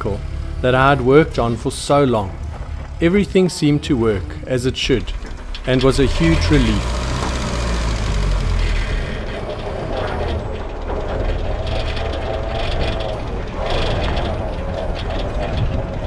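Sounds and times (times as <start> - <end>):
vehicle engine rumbling: 0.0 - 16.0.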